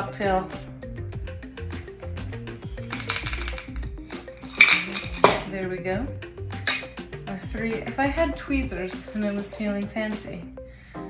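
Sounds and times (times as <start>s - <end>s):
background music: 0.0s - 11.0s
ice rattling in metal shaker: 2.8s - 5.5s.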